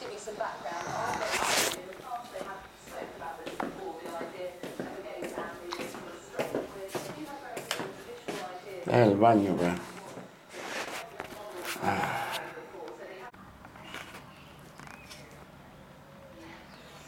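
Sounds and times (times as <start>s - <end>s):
footsteps on tiled floor: 0.0s - 8.8s, 9.4s - 12.6s
background speech: 0.0s - 17.0s.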